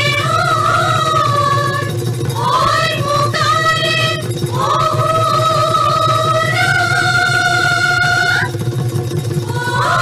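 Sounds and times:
continuous drumming: 0:00.0 - 0:10.0
high held sliding vocal note: 0:09.5 - 0:10.0.

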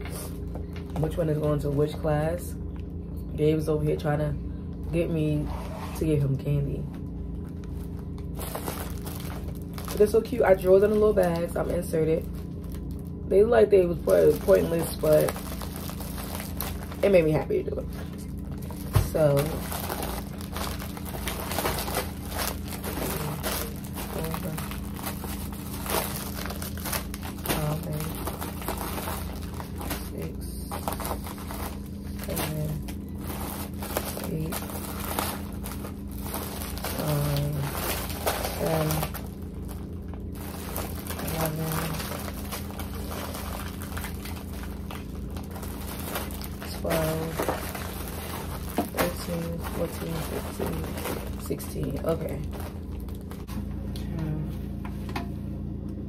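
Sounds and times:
steady low hum: 0:00.0 - 0:56.0
plastic wrappers crinkling: 0:07.3 - 0:53.6.

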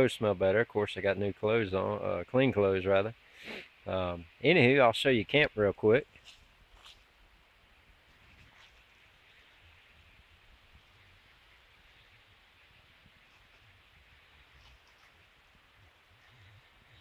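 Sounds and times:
faint rustles: 0:06.0 - 0:17.0.

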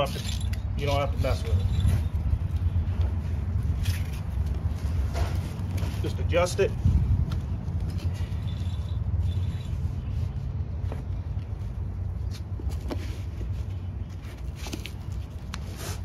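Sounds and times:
hook-and-loop straps rustling: 0:00.0 - 0:16.0.

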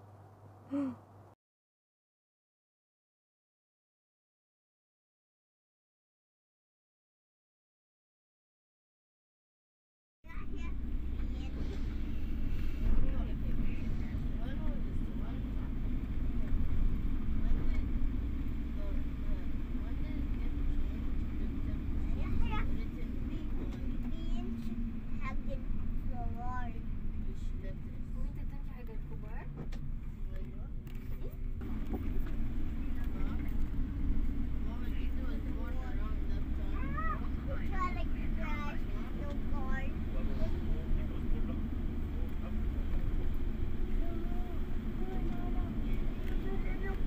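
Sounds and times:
faint voices talking: 0:10.3 - 0:47.0
road noise: 0:10.3 - 0:47.0
vehicle cabin rumble: 0:10.3 - 0:47.0
faint voices: 0:31.1 - 0:47.0.

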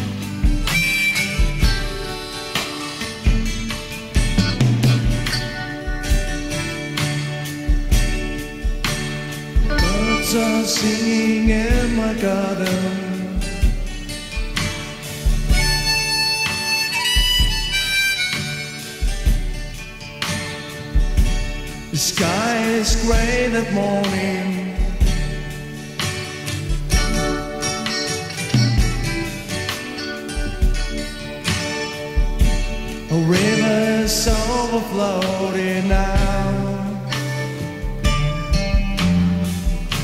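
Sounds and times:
low beat: 0:00.0 - 0:20.2, 0:20.8 - 0:40.0
acoustic guitar strumming chords: 0:00.0 - 0:40.0
harmonica playing: 0:00.4 - 0:04.6, 0:09.6 - 0:11.4, 0:15.4 - 0:19.7, 0:26.9 - 0:31.5.

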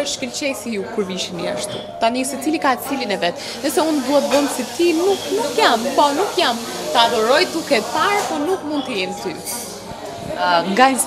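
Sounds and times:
woman talking animatedly: 0:00.0 - 0:09.6, 0:10.4 - 0:11.0.

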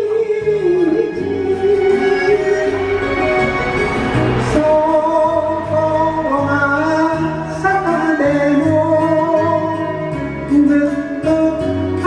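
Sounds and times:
karaoke backing track: 0:00.0 - 0:12.0
person singing ballad: 0:00.0 - 0:12.0.

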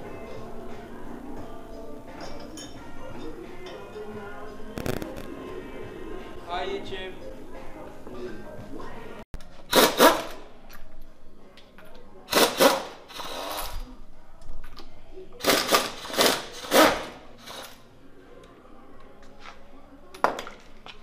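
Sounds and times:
air tool bursts: 0:09.7 - 0:10.4, 0:12.3 - 0:13.7.

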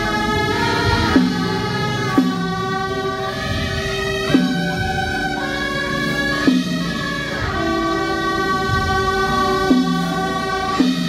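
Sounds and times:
brass band holding notes: 0:00.0 - 0:11.0.

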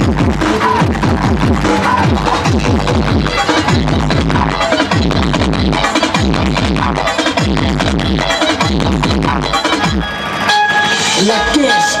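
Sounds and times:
loud dance music: 0:00.0 - 0:12.0
horn-like blast of held tones: 0:10.4 - 0:12.0.

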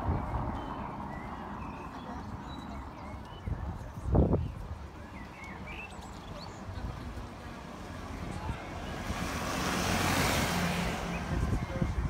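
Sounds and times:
faint voices of passers-by: 0:00.0 - 0:12.0
traffic rumble: 0:00.0 - 0:12.0
wind: 0:00.0 - 0:12.0.

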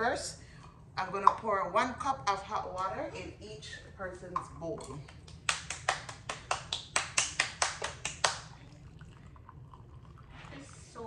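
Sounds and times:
child clapping hands: 0:05.4 - 0:08.4.

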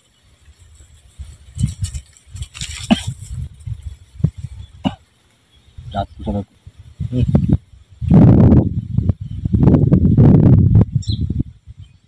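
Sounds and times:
wind rumble on microphone: 0:00.0 - 0:05.0, 0:05.6 - 0:12.0.

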